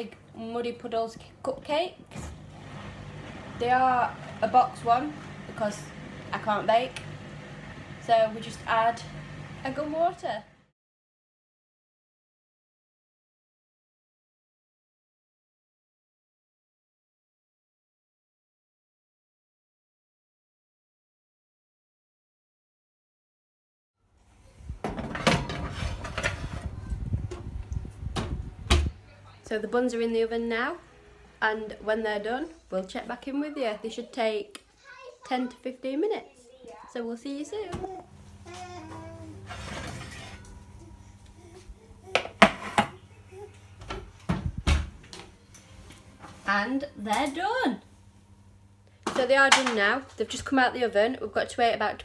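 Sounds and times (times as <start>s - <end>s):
metal bakeware clattering: 39.4s - 40.6s.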